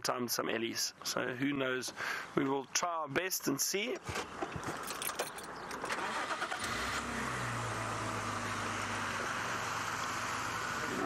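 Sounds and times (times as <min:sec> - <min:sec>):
tyre noise on dirt road: 0:03.5 - 0:11.0
vehicle engine running: 0:06.0 - 0:11.0.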